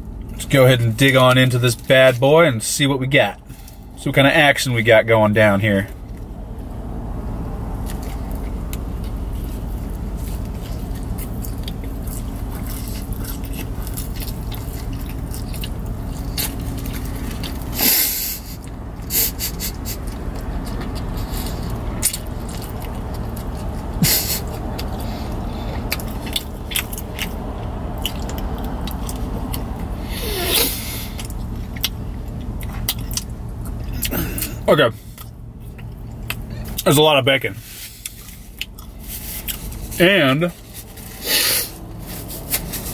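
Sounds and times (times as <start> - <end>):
car cabin hum: 0.0 - 42.9
person eating: 7.8 - 36.8, 37.8 - 39.9.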